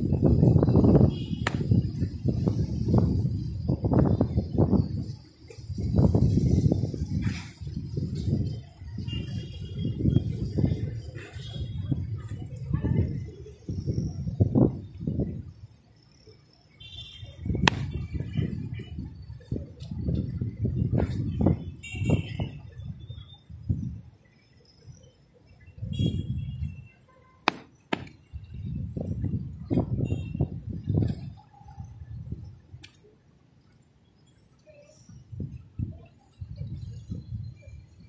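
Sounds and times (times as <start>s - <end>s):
wind on microphone: 0.0s - 15.6s, 17.2s - 24.1s, 25.7s - 26.8s, 28.3s - 32.8s, 35.1s - 38.0s.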